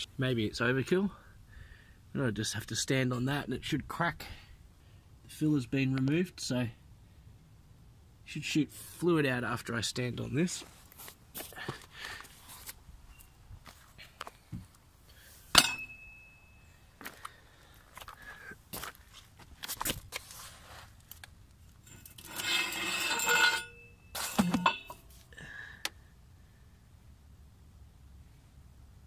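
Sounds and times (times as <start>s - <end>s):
metal tools clicking and knocking: 15.5s - 16.1s
sharp metallic clink: 15.5s - 16.7s, 23.0s - 25.1s
scraping and rustling: 19.0s - 21.3s, 21.9s - 25.3s.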